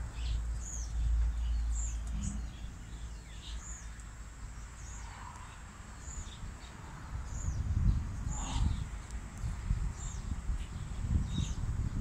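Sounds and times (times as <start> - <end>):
wind rumble on microphone: 4.5 - 12.0.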